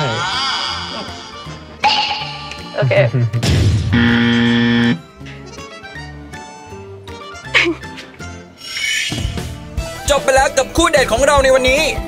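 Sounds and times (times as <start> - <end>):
background music with bass line: 0.9 - 12.0
loud buzzy fail sound effect: 3.9 - 5.0.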